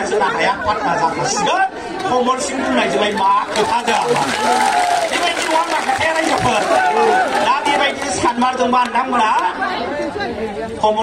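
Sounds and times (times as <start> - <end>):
man speaking into microphones: 0.0 - 4.4, 5.0 - 11.0.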